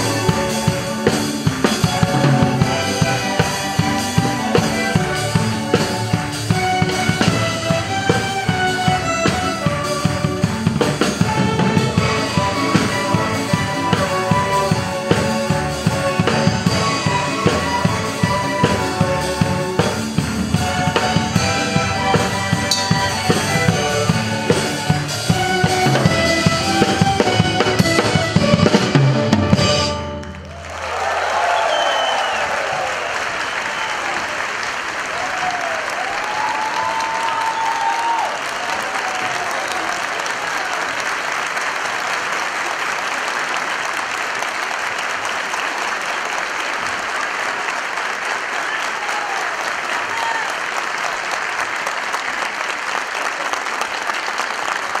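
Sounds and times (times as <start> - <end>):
audience applause: 0.0 - 55.0
cheers and whistles: 30.5 - 40.9, 48.6 - 50.7.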